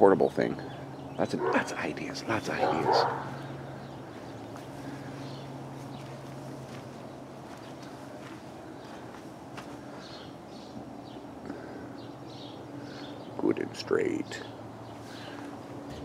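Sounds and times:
steady low hum: 0.0s - 16.0s
footsteps on dirt: 4.1s - 10.2s, 14.9s - 16.0s.

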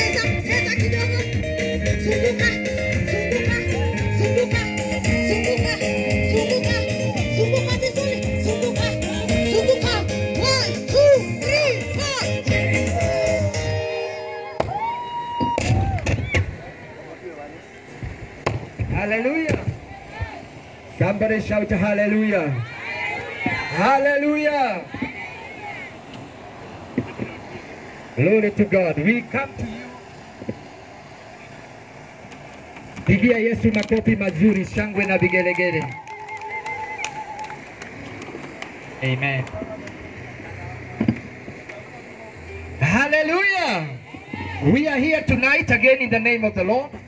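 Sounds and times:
amplified keyboard music: 0.0s - 14.7s.

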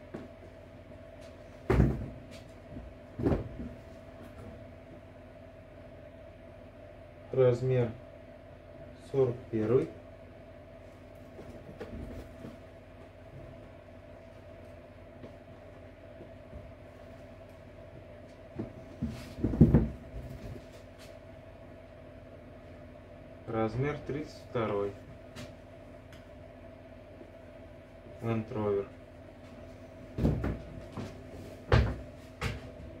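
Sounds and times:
low background hum: 0.0s - 33.0s.

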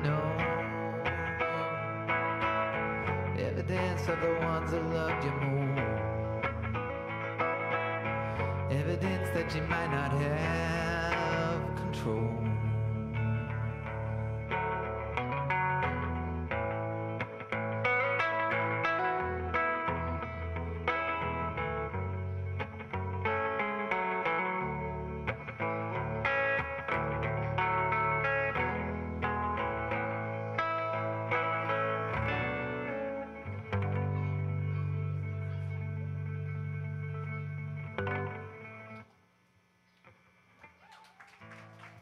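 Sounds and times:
electric guitar picked notes: 0.0s - 39.1s.

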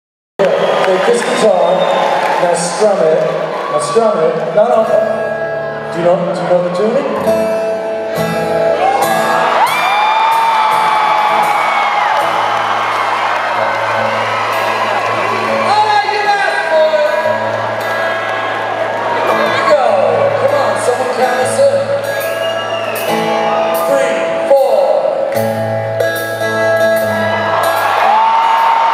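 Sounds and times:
fans whooping and yelling: 0.4s - 4.4s, 8.7s - 24.5s, 27.0s - 28.9s
concert crowd cheering: 0.4s - 7.2s, 7.8s - 28.9s
acoustic guitars playing: 1.0s - 28.9s.

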